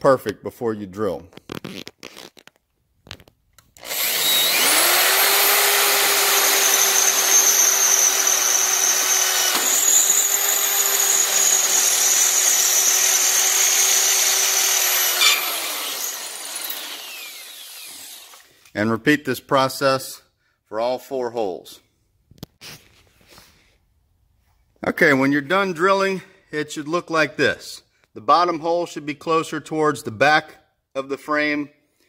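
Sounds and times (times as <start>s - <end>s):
electric drill boring through metal: 3.8s - 18.5s.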